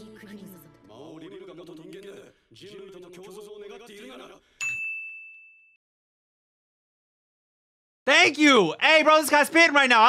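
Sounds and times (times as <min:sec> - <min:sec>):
high clear ding: 0:04.6 - 0:05.8.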